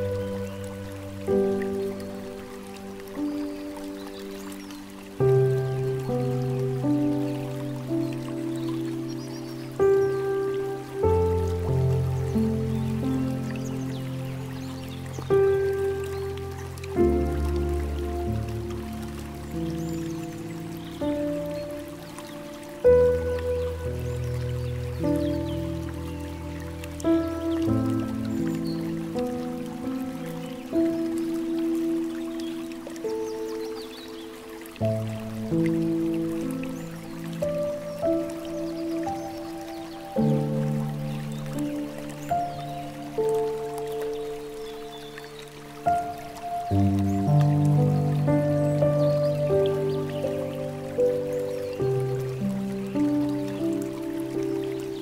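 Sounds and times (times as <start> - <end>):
gentle piano music: 0.0 - 55.0
water trickling: 0.0 - 55.0.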